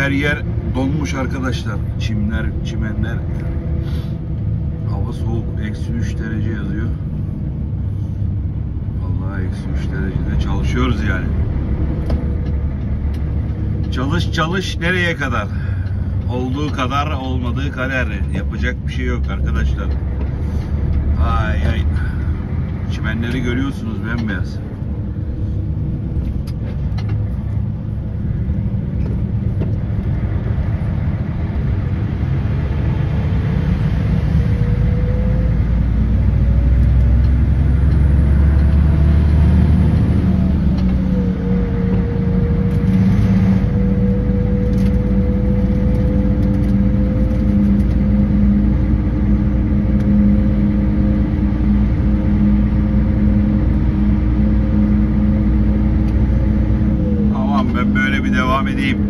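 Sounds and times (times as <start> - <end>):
diesel truck engine: 0.0 - 59.0
road noise: 0.0 - 59.0.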